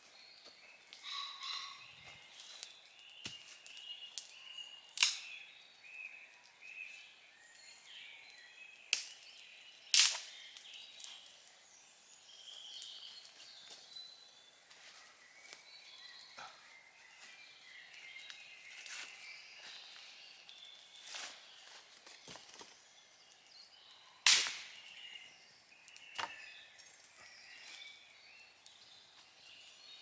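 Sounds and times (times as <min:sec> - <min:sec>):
songbirds chirping: 0:00.0 - 0:30.0.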